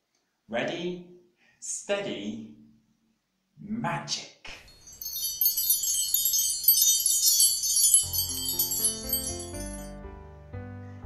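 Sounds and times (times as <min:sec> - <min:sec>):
shimmering wind chimes: 0:04.6 - 0:10.0
soft background music: 0:08.8 - 0:11.0.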